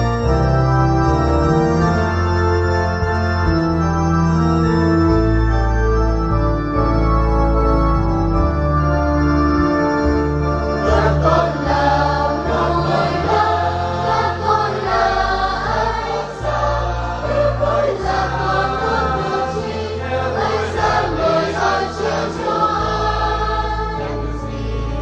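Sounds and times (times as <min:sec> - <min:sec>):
organ accompaniment: 0:00.0 - 0:25.0
choir singing a hymn: 0:10.7 - 0:25.0.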